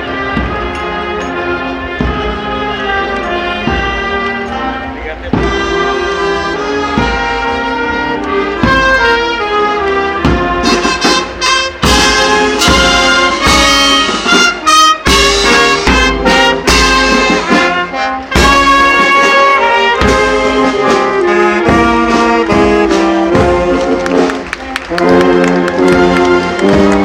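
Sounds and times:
marching band playing: 0.0 - 27.0.

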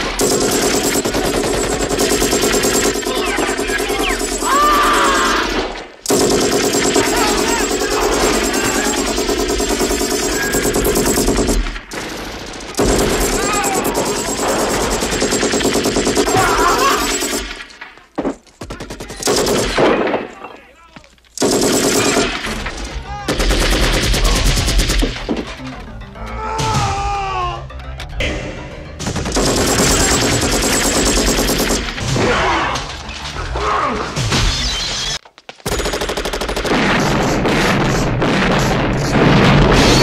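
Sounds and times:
rapid automatic gunfire: 0.0 - 17.8, 18.8 - 20.1, 21.4 - 22.6, 23.3 - 25.2, 29.2 - 32.0, 35.7 - 40.0.

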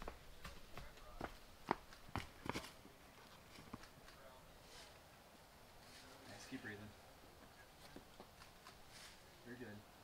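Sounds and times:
shoes and hands on rock: 0.0 - 4.3.

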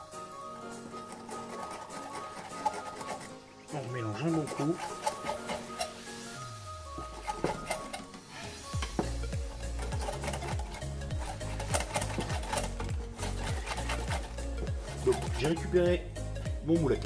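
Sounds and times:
background music: 0.0 - 17.0
whisk beating batter in glass bowl: 0.9 - 3.4, 4.1 - 6.1, 9.3 - 15.8.

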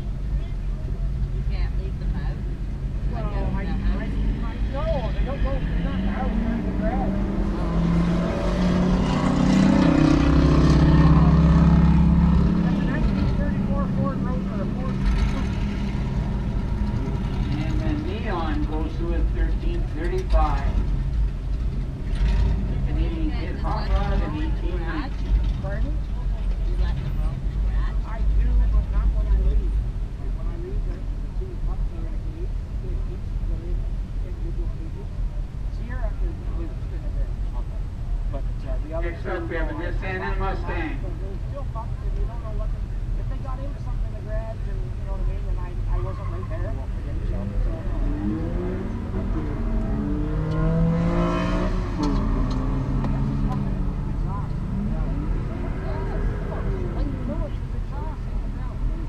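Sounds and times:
people talking: 0.0 - 15.6, 17.0 - 20.8, 22.7 - 50.3, 51.3 - 59.0
car engines rumbling: 0.0 - 59.0
engine revving: 2.0 - 25.9, 46.0 - 59.0.

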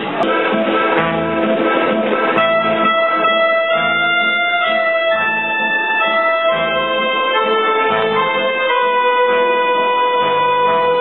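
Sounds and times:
electronic keyboard melody: 0.0 - 11.0.

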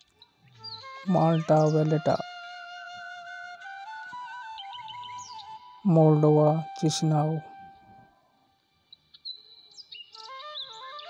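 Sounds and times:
thin whistle-like tone: 4.0 - 8.4.

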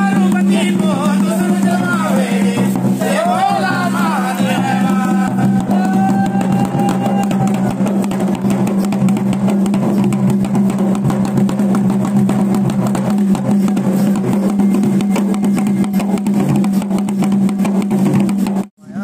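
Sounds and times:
dhol drums beating fast rhythm: 0.0 - 18.8.

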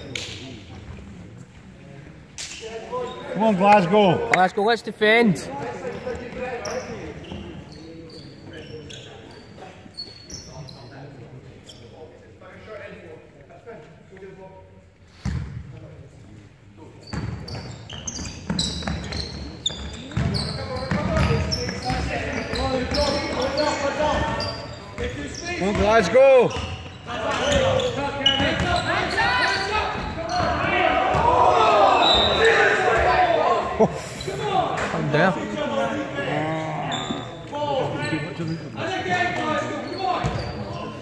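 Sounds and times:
sneakers squeaking: 2.4 - 4.1, 5.5 - 12.2, 15.1 - 15.6, 16.8 - 34.8, 35.5 - 41.0
basketball bouncing on court: 17.1 - 24.3
people shouting: 29.1 - 33.6.

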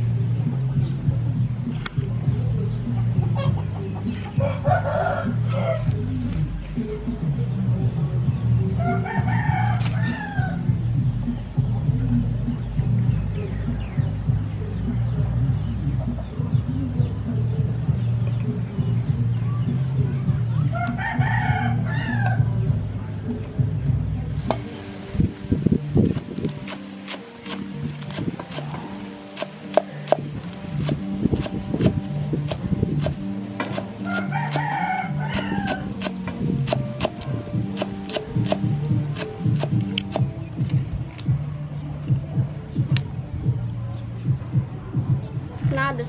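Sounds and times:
rooster crowing: 4.4 - 5.9, 8.8 - 10.6, 20.8 - 22.4, 34.0 - 36.0
cleaver chopping on wooden board: 26.0 - 34.7, 35.3 - 40.4.

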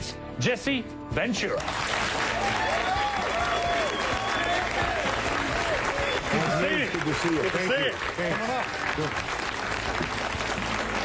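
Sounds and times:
audience applauding: 1.6 - 11.0.

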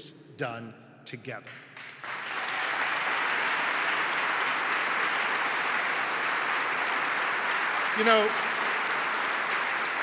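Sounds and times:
audience applauding: 1.8 - 10.0.

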